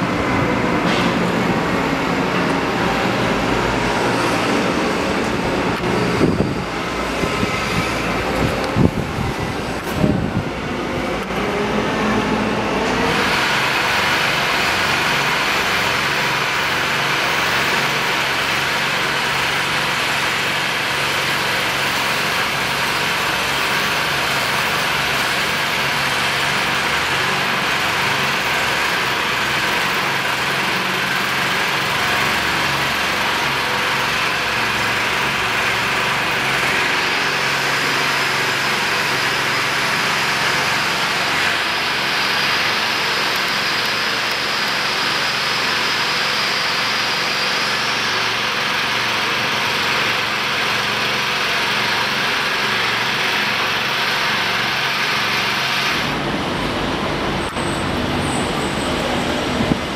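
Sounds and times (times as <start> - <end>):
mechanical drone with hiss: 0.0 - 59.9.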